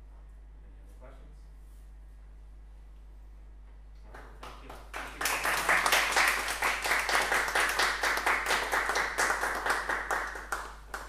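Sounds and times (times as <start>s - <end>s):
small audience clapping: 4.0s - 11.0s.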